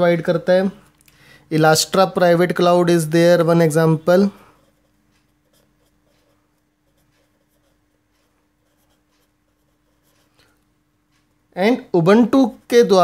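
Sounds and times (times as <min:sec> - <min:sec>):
faint low hum: 0:00.0 - 0:13.0
marker scratching on paper: 0:03.4 - 0:10.6.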